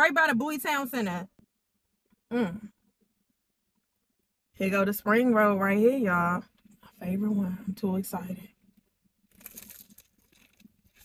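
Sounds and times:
crunching spring roll being chewed: 9.3 - 11.0.

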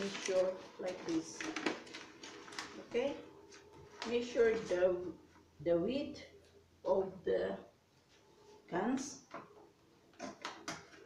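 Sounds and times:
handling scissors and wrapping paper: 0.0 - 4.8.

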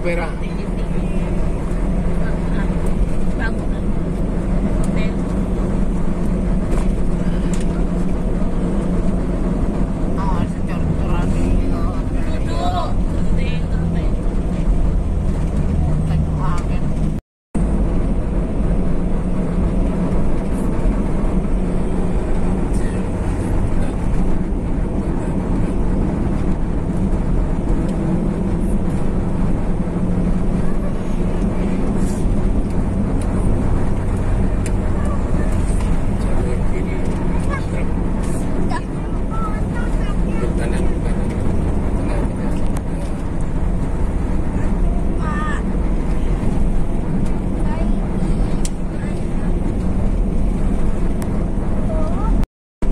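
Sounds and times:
vehicle engine and road noise: 0.0 - 52.9.

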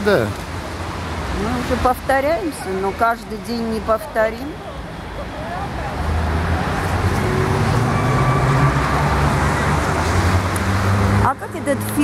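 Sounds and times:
vehicle engine hum and road noise: 0.0 - 12.0.

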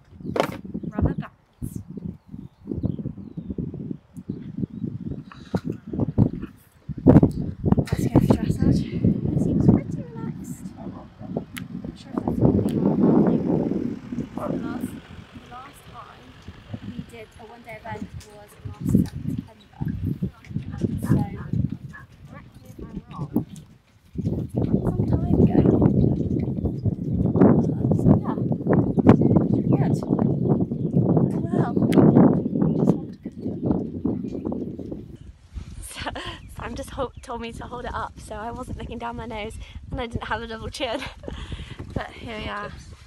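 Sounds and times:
low rumbling on microphone: 0.0 - 43.0
woman talking and laughing softly: 7.8 - 10.7, 35.8 - 37.2, 39.6 - 42.8
muffled talking: 7.9 - 23.5.

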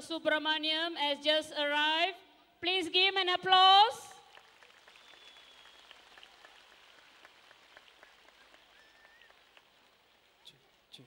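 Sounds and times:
sparse applause: 4.3 - 10.7.

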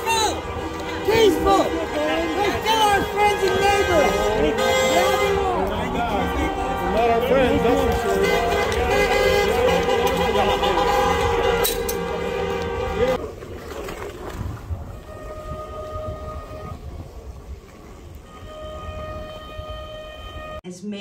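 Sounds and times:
people shouting: 0.0 - 13.2
vehicle horns sounding: 0.0 - 13.2, 14.9 - 17.1, 18.2 - 20.6.

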